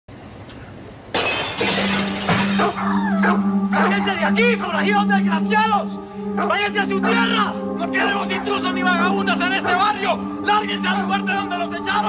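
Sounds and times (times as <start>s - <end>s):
glass window shattering: 1.1s - 3.0s.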